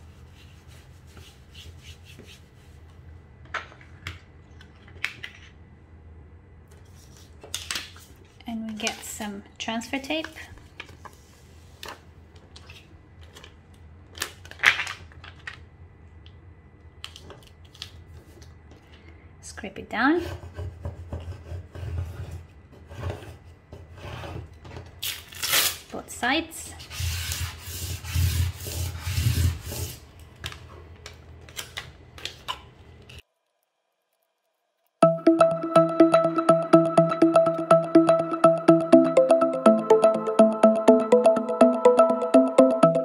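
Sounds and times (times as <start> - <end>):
plastic scraper rubbing vinyl: 26.8 - 30.0.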